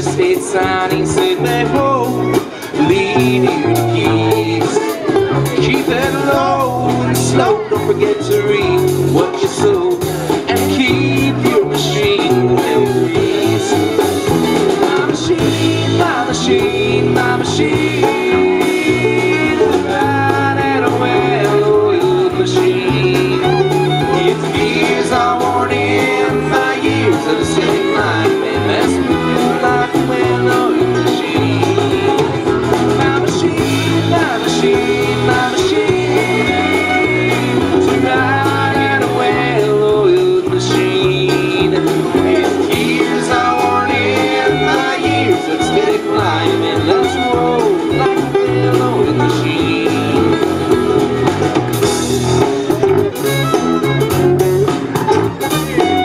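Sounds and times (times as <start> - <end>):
acoustic guitar: 0.0 - 56.0
banjo: 0.0 - 56.0
drum kit: 0.0 - 56.0
fiddle: 0.0 - 56.0
upright bass: 0.0 - 56.0.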